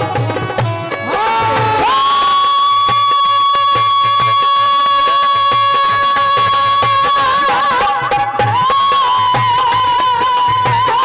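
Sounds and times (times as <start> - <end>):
hand drums beating: 0.0 - 11.0.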